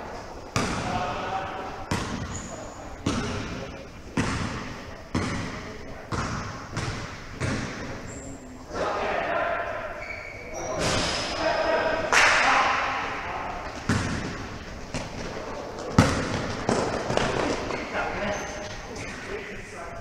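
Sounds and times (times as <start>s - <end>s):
basketball dribbling on court: 1.9s - 2.4s, 3.0s - 8.0s, 13.7s - 17.7s
sneakers squeaking on floor: 1.9s - 3.5s, 4.2s - 8.6s, 10.0s - 11.4s, 13.6s - 19.2s
players shouting: 8.7s - 13.6s.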